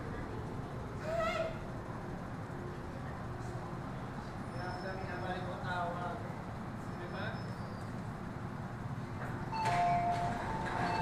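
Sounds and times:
station and train hum: 0:00.0 - 0:11.0.

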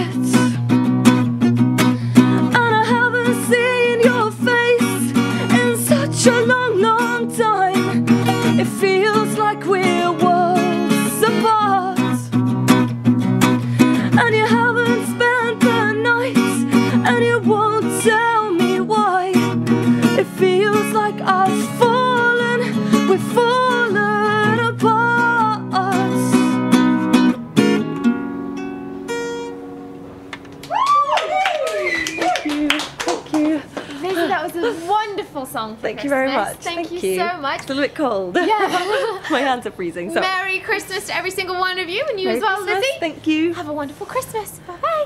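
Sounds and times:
woman singing: 0:00.0 - 0:00.6, 0:02.3 - 0:12.4, 0:13.8 - 0:26.6
acoustic guitar strumming: 0:00.0 - 0:30.6, 0:38.8 - 0:45.0.

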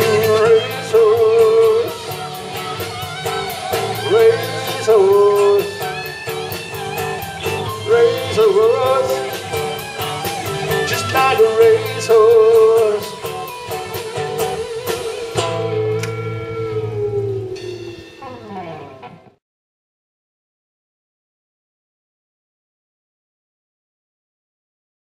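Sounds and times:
drumbeat: 0:00.0 - 0:15.9
held guitar chord ringing: 0:00.0 - 0:19.4
live rock band playing: 0:00.0 - 0:19.4.

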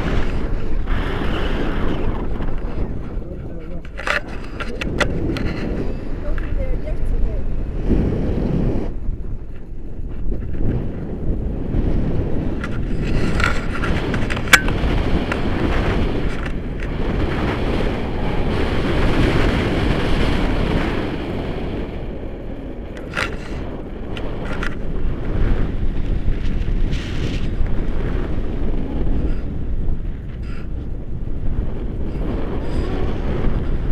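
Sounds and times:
wind buffeting microphone: 0:00.0 - 0:33.9.

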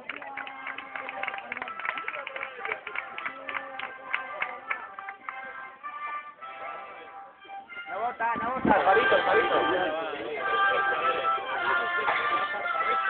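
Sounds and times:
crowd voices: 0:00.0 - 0:13.0
band playing processional music: 0:04.0 - 0:13.0.

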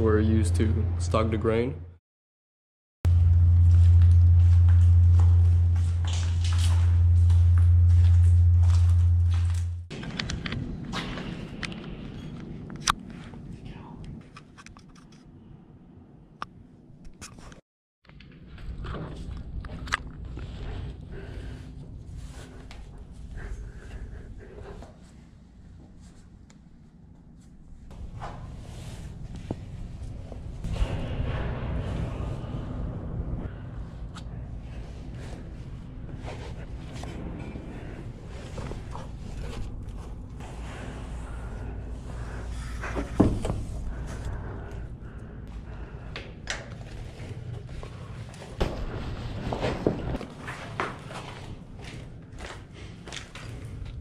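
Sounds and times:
footsteps and scuffing: 0:03.5 - 0:10.0.

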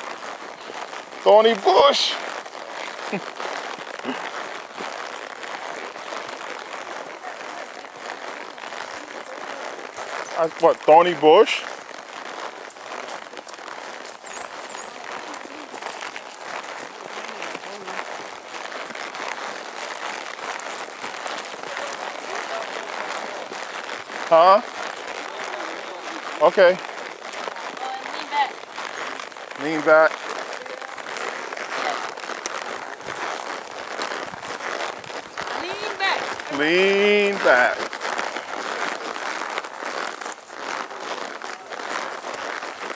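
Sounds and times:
brush rustling and crackling: 0:00.0 - 0:42.9.

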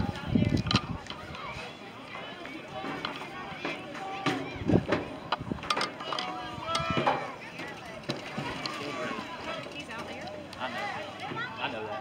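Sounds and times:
faint voices of spectators talking: 0:00.0 - 0:12.0.

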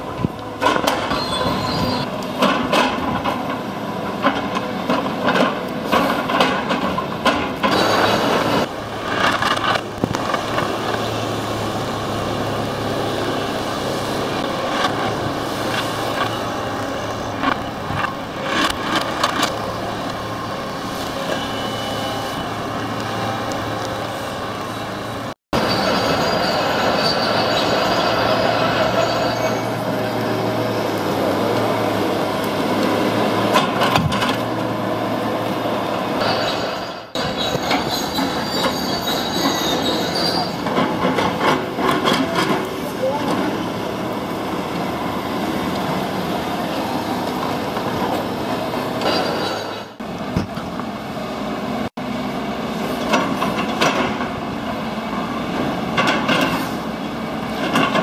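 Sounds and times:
diesel engine running: 0:00.0 - 0:49.2.

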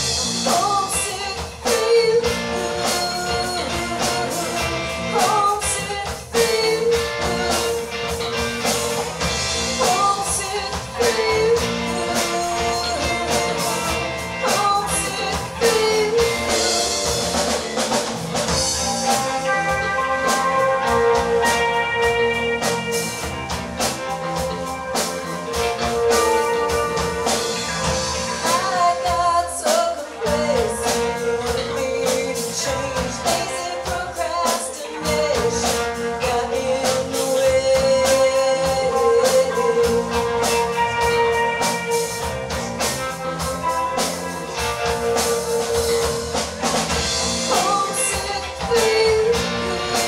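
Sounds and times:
live rock band playing: 0:00.0 - 0:50.0
woman singing: 0:00.1 - 0:08.7, 0:09.3 - 0:17.9, 0:24.2 - 0:46.4, 0:47.0 - 0:50.0.

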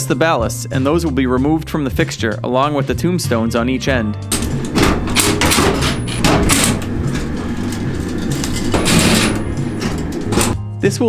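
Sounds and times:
background music: 0:00.0 - 0:11.0
metal parts clattering: 0:04.3 - 0:10.6.

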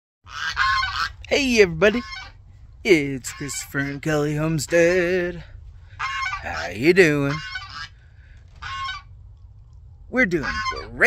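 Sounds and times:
goose honking: 0:00.3 - 0:08.0, 0:08.6 - 0:09.1, 0:10.1 - 0:11.0.

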